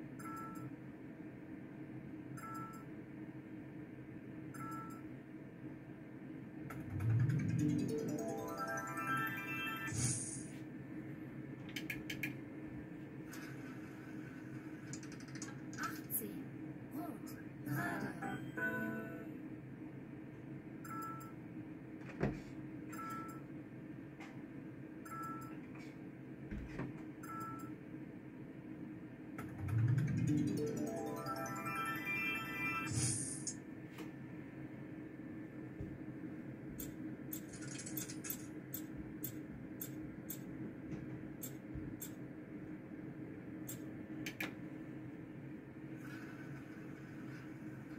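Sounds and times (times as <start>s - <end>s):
rapid clicks: 14.8s - 15.8s
machine humming: 29.4s - 31.3s
electronic win jingle: 30.2s - 32.9s.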